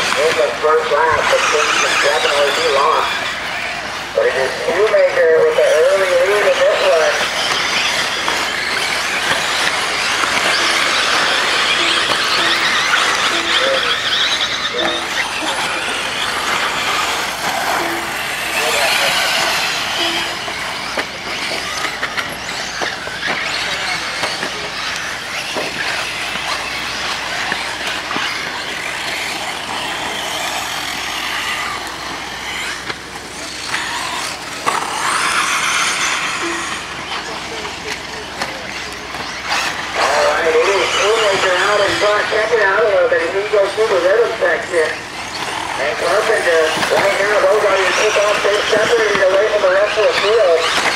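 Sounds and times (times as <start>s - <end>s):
rc car motors whining: 0.0s - 50.9s
short beeps: 17.8s - 18.7s, 36.4s - 36.8s.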